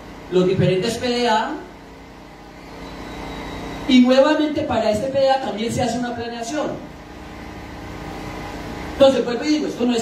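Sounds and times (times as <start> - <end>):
faint hum: 0.0 - 10.0.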